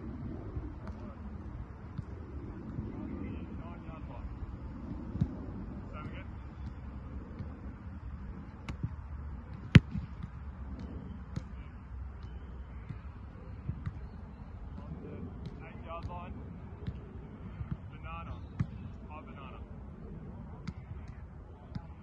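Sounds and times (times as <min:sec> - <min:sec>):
outdoor field ambience: 0:00.0 - 0:22.0
faint distant voices: 0:00.1 - 0:22.0
football thuds: 0:08.7 - 0:11.7, 0:14.7 - 0:17.0.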